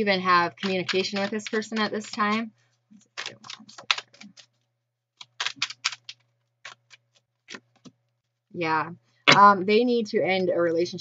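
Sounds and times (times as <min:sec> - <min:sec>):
cards being shuffled: 0:00.6 - 0:02.4, 0:03.0 - 0:08.1.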